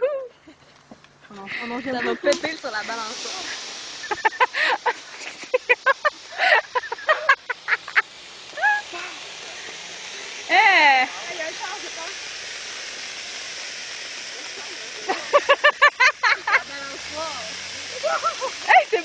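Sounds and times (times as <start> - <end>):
firework fountain hissing: 0.0 - 19.0
person yelling: 8.6 - 9.2.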